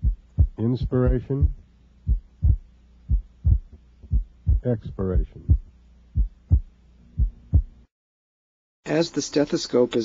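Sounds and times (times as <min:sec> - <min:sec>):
faint steady hum: 0:00.0 - 0:07.9
heartbeat low thumps: 0:00.0 - 0:07.9.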